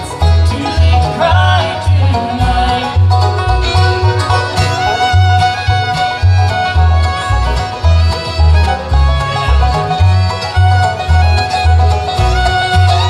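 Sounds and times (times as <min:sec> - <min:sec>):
banjo rolls: 0:00.0 - 0:13.0
mandolin: 0:00.0 - 0:13.0
upright bass pulsing: 0:00.0 - 0:13.0
fiddle long held note: 0:03.4 - 0:13.0.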